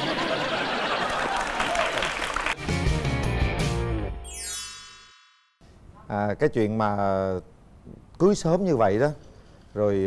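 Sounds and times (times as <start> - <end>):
studio audience applauding: 0.0 - 2.8.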